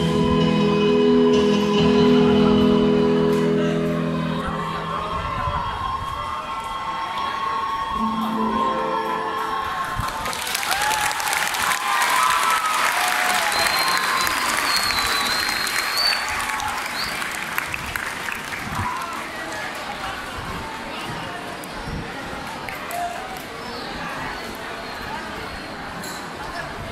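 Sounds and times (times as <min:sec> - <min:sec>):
audience applauding and cheering: 0:04.0 - 0:20.4.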